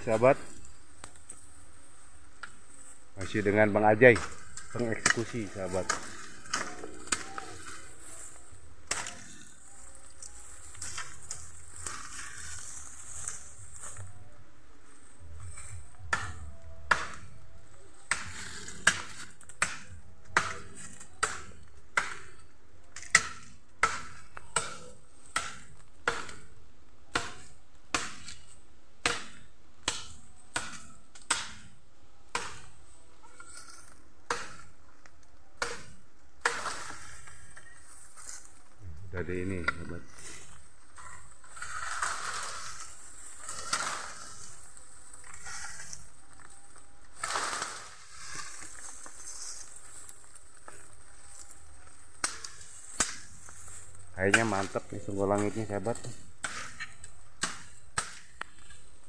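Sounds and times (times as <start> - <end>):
blade chopping bamboo: 18.0 - 22.4, 23.0 - 31.7, 32.3 - 33.6, 34.2 - 34.7, 35.6 - 37.5, 52.1 - 58.9.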